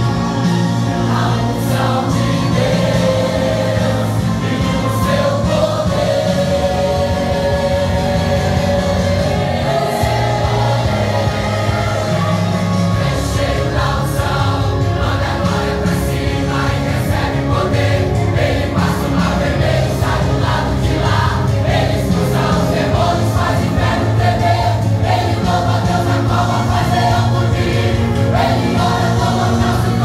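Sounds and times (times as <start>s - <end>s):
band accompaniment with steady beat: 0.0s - 30.0s
congregation singing: 0.0s - 30.0s
singers on microphones: 0.0s - 30.0s.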